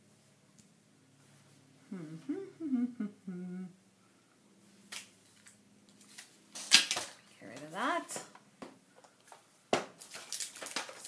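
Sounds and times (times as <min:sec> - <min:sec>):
woman humming: 0:01.8 - 0:03.8.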